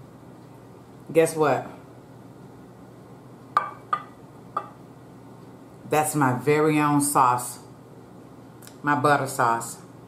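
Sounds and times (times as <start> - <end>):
ceramic bowl clinking: 3.6 - 4.8.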